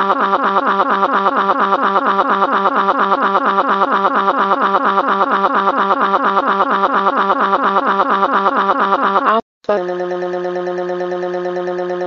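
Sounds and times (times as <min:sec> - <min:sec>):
synthetic voice repeating a syllable: 0:00.0 - 0:12.0.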